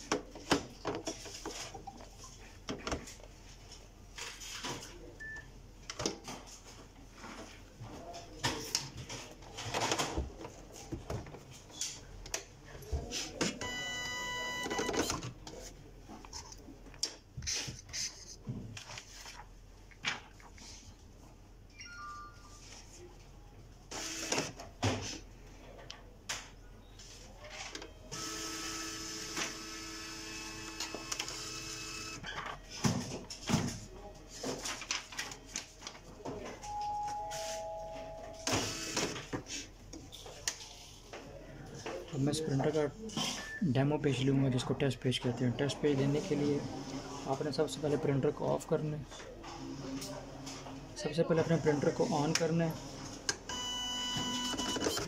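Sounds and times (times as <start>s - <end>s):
paper rustling: 17.5s - 19.5s
printer motor whine: 28.1s - 32.2s, 38.4s - 39.1s
two-note electronic chime: 36.7s - 38.4s.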